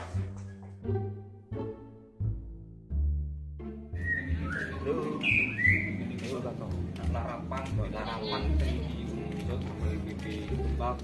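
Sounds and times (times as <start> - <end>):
bird chirping: 4.0 - 6.1.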